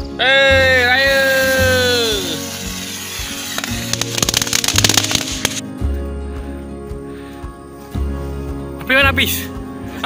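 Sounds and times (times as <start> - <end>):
background music: 0.0 - 10.0
firework crackling: 1.1 - 5.6.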